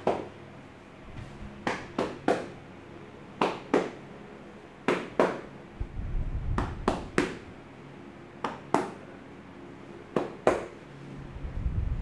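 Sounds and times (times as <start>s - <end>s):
hand slaps on back: 1.6s - 2.6s, 3.4s - 4.0s, 4.9s - 5.5s, 6.5s - 7.4s, 8.4s - 9.0s.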